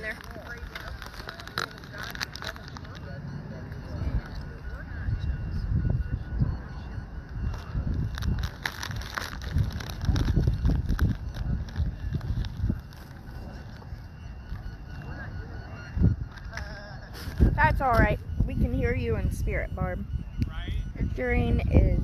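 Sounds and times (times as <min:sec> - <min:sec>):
faint high beeping ball: 0:00.0 - 0:08.1, 0:10.7 - 0:22.0
wind on microphone: 0:00.0 - 0:22.0.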